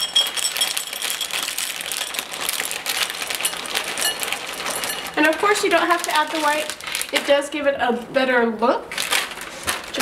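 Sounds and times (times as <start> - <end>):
chocolate chips pouring into bowl: 0.0 - 7.2.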